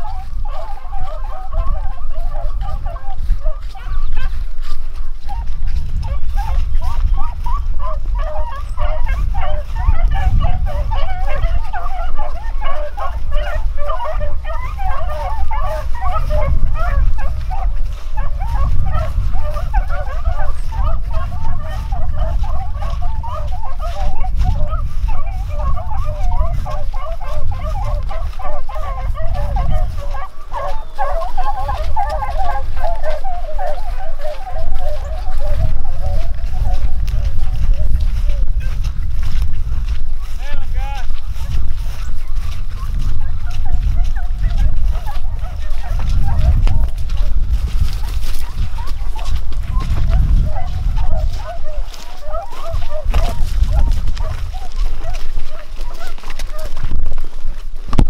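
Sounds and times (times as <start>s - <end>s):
hounds baying: 0.0s - 57.9s
wind rumble on microphone: 0.0s - 58.0s.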